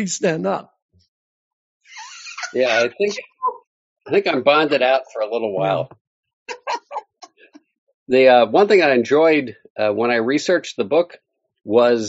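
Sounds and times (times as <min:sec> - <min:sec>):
conversation: 0:00.0 - 0:12.0.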